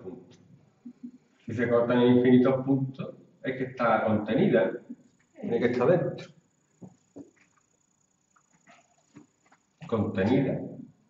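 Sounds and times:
man speaking: 0:01.5 - 0:04.9, 0:05.5 - 0:06.2, 0:09.9 - 0:10.8.

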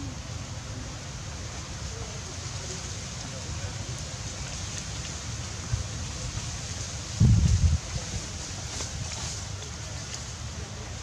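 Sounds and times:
wind on microphone: 0:05.7 - 0:09.3.

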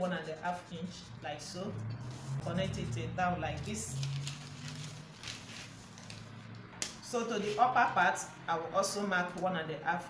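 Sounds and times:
paper rustling on a table: 0:04.0 - 0:06.4.

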